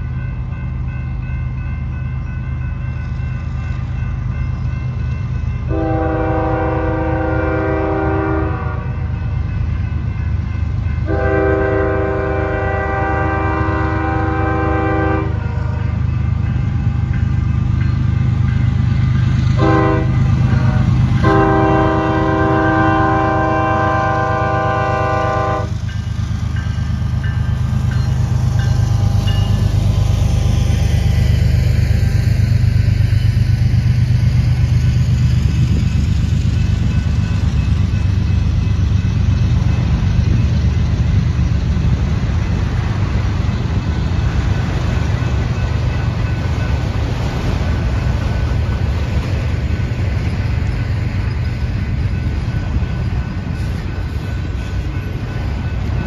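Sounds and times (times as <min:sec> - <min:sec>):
train cars rolling on rails: 0:00.0 - 0:56.0
train air horn: 0:05.7 - 0:09.0, 0:11.0 - 0:16.0, 0:19.6 - 0:25.8.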